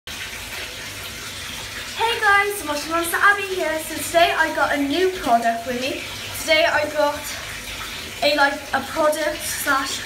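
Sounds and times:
bath tap running: 0.1s - 10.0s.

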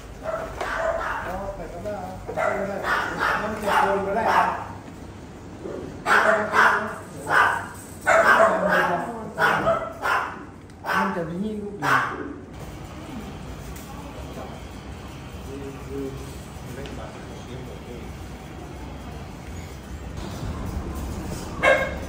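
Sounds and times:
dogs barking: 0.1s - 1.6s, 2.3s - 4.8s, 5.8s - 12.5s, 21.5s - 22.0s
people talking: 12.9s - 19.5s.

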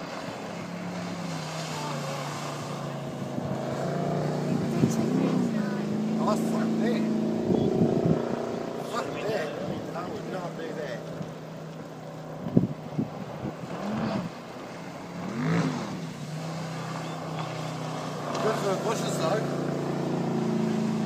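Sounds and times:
voices calling out: 0.1s - 12.2s, 16.2s - 20.8s.

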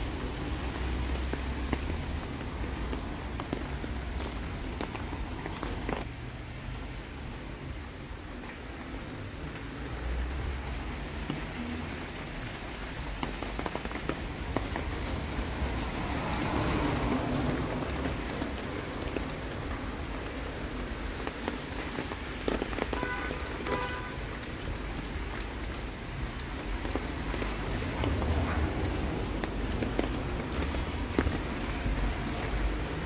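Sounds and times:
rain on wet street: 0.0s - 33.0s
raindrops tapping on umbrella: 0.0s - 33.0s.

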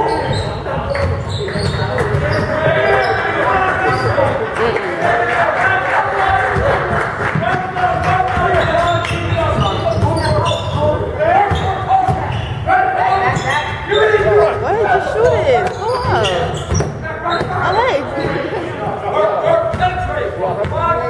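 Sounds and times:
players shouting: 2.2s - 16.6s.

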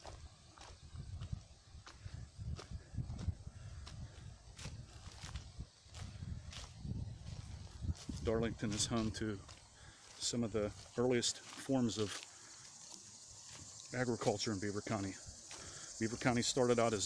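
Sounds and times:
footsteps crunching on ballast: 0.0s - 17.0s.

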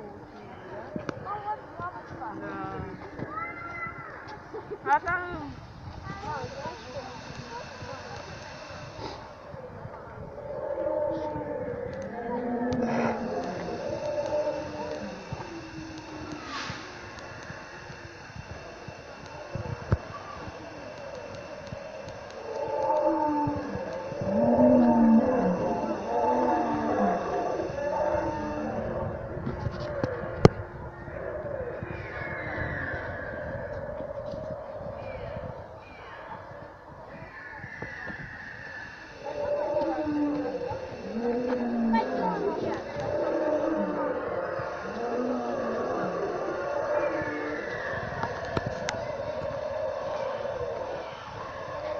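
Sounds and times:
dinosaur roars and growls: 9.9s - 51.9s.

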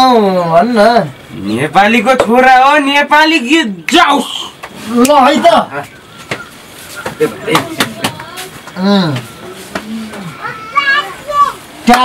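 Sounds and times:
men speaking: 0.0s - 12.0s.

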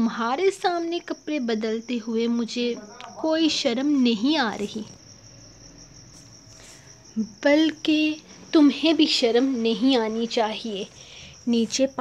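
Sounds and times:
high-pitched insect chirping: 0.0s - 12.0s.

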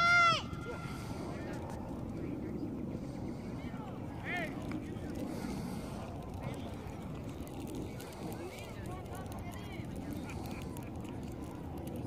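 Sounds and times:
faint distant voices: 0.0s - 12.0s
wind rumbling on microphone: 0.0s - 12.0s.

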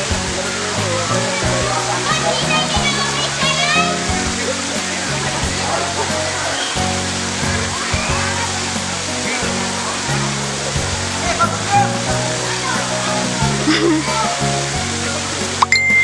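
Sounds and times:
scattered voices: 0.0s - 15.6s
background music with bass line: 0.0s - 16.0s
fountain water pouring: 0.0s - 16.0s.

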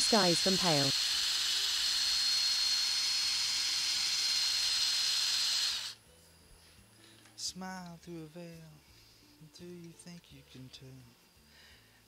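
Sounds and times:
lathe tool cutting wood: 0.0s - 6.0s.

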